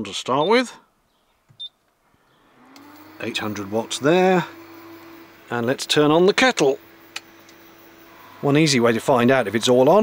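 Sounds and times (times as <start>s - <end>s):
cooling fan whirring: 2.4s - 10.0s.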